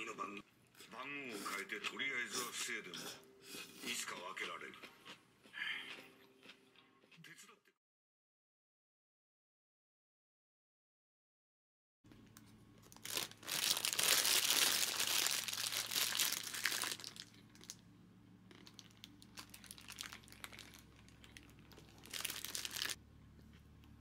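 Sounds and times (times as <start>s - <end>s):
paper wrapper crinkling: 12.8s - 17.8s, 18.5s - 23.0s.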